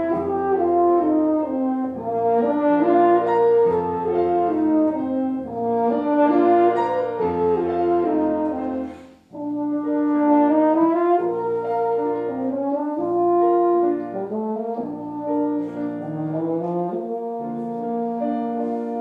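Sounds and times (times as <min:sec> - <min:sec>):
french horn playing slow melody: 0:00.0 - 0:19.0
grand piano accompaniment: 0:00.0 - 0:19.0.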